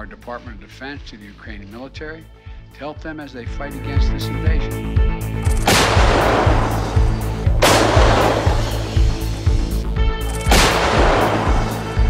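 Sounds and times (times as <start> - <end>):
background music with steady beat: 0.0 - 12.0
artillery guns firing: 5.5 - 9.3, 10.3 - 12.0.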